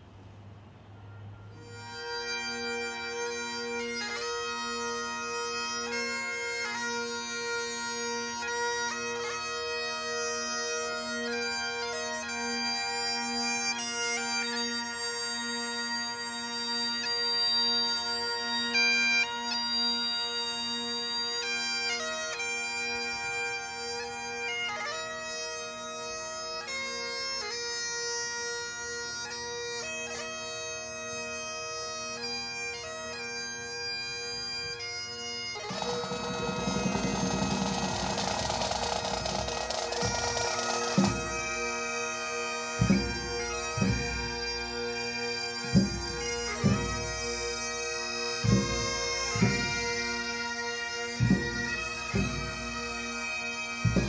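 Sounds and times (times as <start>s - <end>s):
bagpipes playing slow tune: 0.8s - 54.0s
drum roll: 35.7s - 41.4s
sharp drum beat: 35.7s - 41.4s.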